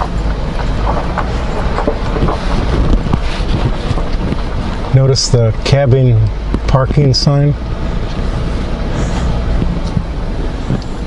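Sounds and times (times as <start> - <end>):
engine and tyre rumble: 0.0 - 11.0
gravel crunching: 0.0 - 11.0
wind buffeting microphone: 0.0 - 11.0.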